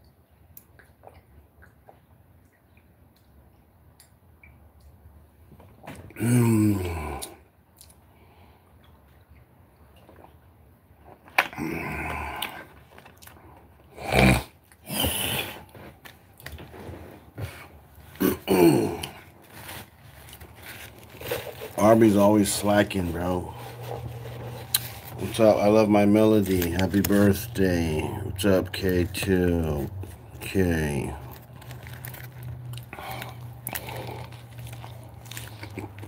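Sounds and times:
man clearing his throat: 6.2s - 7.2s, 18.2s - 19.2s
handling noises: 15.0s - 27.6s
man speaking a word: 21.8s - 23.6s, 25.2s - 31.3s.

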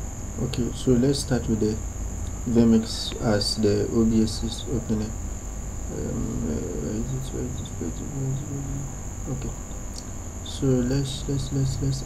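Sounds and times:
high-pitched insect-like drone: 0.0s - 12.0s.

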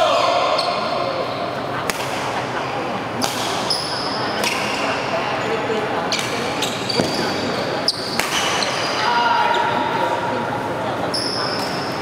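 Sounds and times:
shoes squeaking on court: 6.1s - 9.8s.

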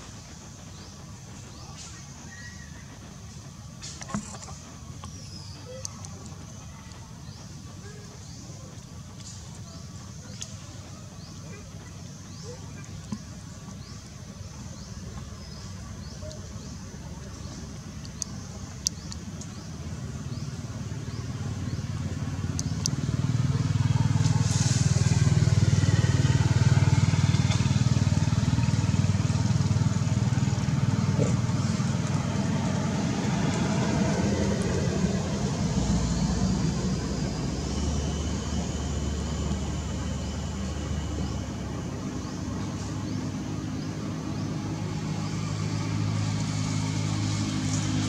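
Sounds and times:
vehicle engine passing: 19.6s - 48.0s.

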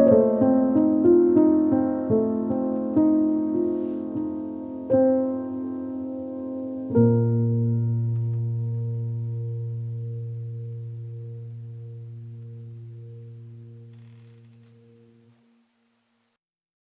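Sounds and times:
low piano note ringing: 0.0s - 15.3s.

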